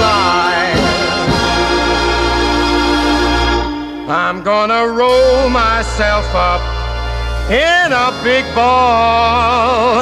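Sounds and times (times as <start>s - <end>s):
hammond organ chord: 0.0s - 10.0s
low bass note: 2.2s - 7.7s.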